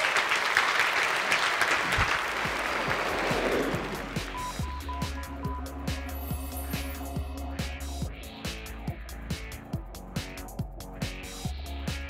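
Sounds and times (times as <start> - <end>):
audience applauding: 0.0 - 4.6
music with a steady beat: 3.9 - 12.0.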